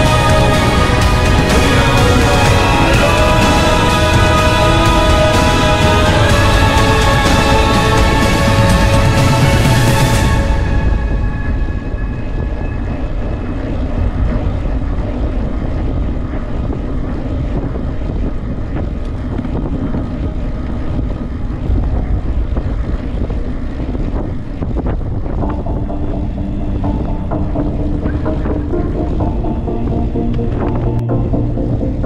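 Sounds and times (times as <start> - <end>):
bicycle rolling on asphalt: 0.0 - 31.0
wind rushing over microphone: 0.0 - 32.0.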